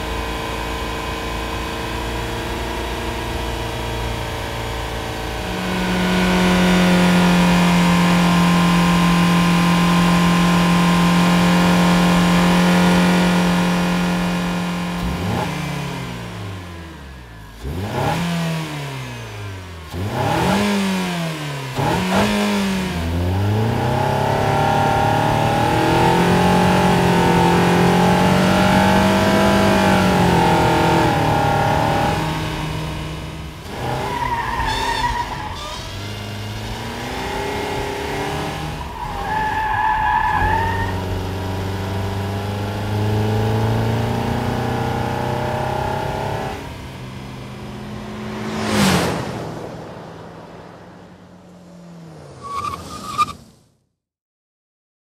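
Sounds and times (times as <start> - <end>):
car engine revving: 0.0 - 52.7
tyres squealing: 33.9 - 36.1
brief high squeal: 34.5 - 36.1, 52.4 - 53.6
sudden loud noise: 48.0 - 51.7.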